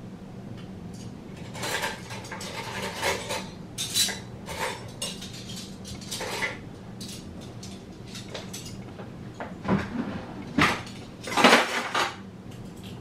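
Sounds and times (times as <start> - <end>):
metal pots and utensils clattering: 1.4 - 8.8, 9.7 - 12.2.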